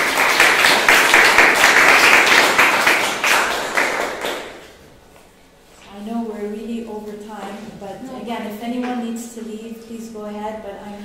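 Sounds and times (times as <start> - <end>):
audience applauding: 0.0 - 4.7.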